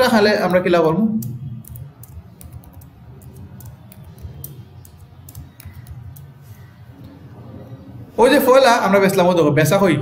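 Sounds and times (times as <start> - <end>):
computer keyboard typing: 1.1 - 6.4.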